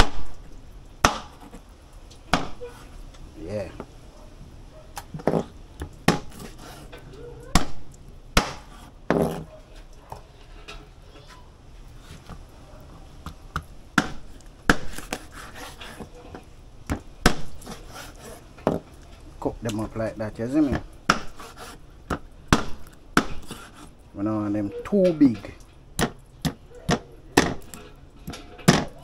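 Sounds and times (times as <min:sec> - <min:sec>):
knife chopping on plastic board: 0:02.3 - 0:02.6, 0:06.0 - 0:06.6, 0:07.6 - 0:09.4, 0:13.5 - 0:16.1, 0:20.7 - 0:23.8, 0:26.0 - 0:27.8.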